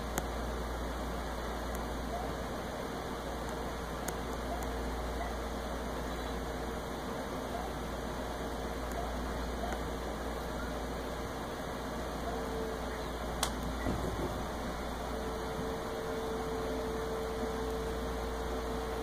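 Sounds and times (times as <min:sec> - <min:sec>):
mechanical room hum: 0:00.0 - 0:19.0.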